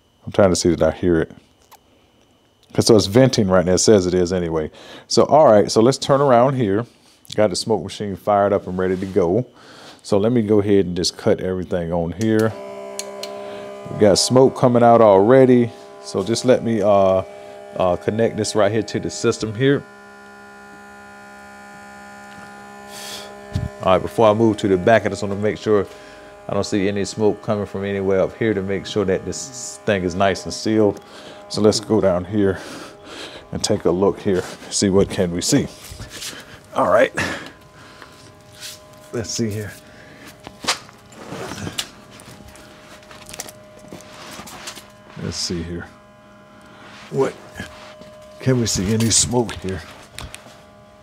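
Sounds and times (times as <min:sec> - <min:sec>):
smoke machine humming: 0:00.0 - 0:51.0.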